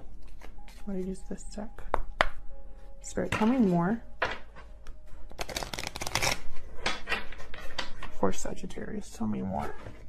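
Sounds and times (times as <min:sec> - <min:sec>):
cards being shuffled: 0:00.2 - 0:01.0, 0:05.3 - 0:06.6.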